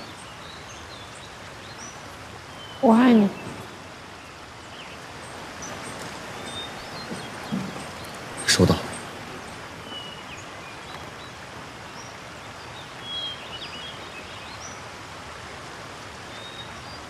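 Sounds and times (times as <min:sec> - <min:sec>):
outdoor background hiss: 0:00.0 - 0:17.0.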